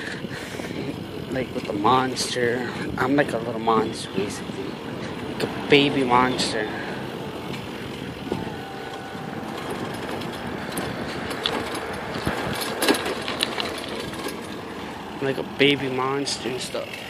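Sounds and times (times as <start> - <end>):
bicycle road and wind noise: 0.0 - 17.0
light clicks and rattles: 9.6 - 14.7.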